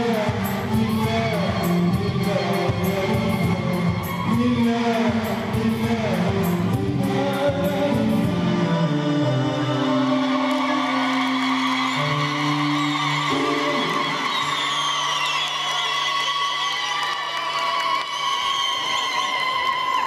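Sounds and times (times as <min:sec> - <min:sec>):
choral music: 0:00.0 - 0:15.8.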